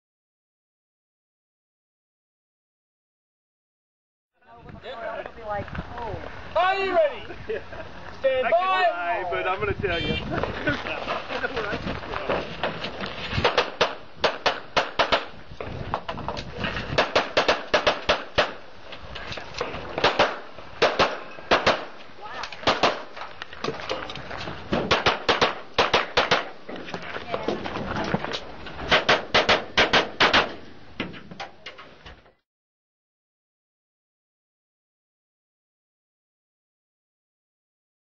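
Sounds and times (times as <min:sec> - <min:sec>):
handgun shots: 0:13.4 - 0:15.3, 0:17.0 - 0:18.6, 0:20.0 - 0:21.9, 0:22.6 - 0:23.1, 0:24.8 - 0:26.5, 0:28.9 - 0:30.6.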